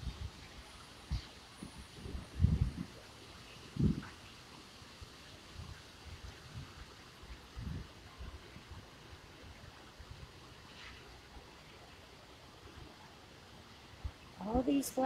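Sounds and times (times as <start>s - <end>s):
wind buffeting microphone: 0.0s - 4.4s, 5.4s - 10.3s
steady hiss: 0.0s - 15.0s.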